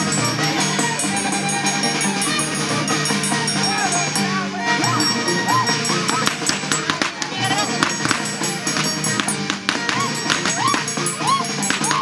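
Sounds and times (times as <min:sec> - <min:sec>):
people shouting: 0:00.0 - 0:12.0
string band with violins and harp: 0:00.0 - 0:12.0.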